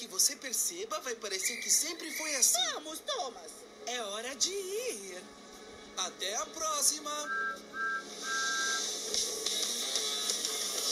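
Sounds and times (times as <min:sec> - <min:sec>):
two-tone steam whistle: 0:07.3 - 0:08.9.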